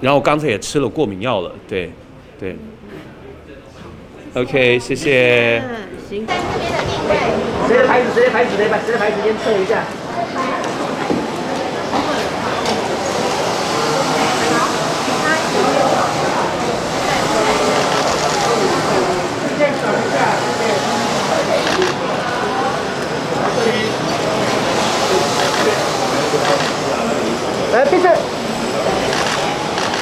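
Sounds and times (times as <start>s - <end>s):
indistinct chatter of people: 0.0s - 30.0s.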